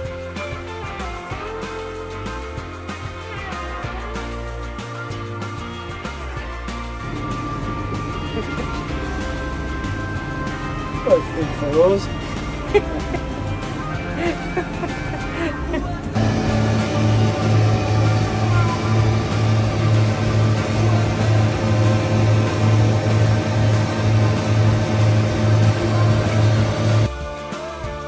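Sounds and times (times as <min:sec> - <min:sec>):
background music: 0:00.0 - 0:28.0
tractor engine running: 0:06.0 - 0:27.1
mower cutting grass: 0:07.0 - 0:15.2, 0:16.1 - 0:27.1.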